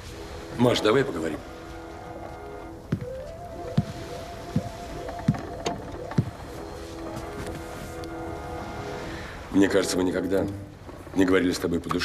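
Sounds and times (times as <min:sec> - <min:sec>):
background music tones: 0:00.0 - 0:11.7.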